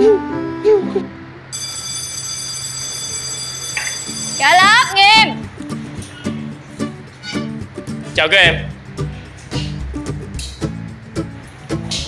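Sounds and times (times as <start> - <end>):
electric school bell ringing: 1.5 - 5.4.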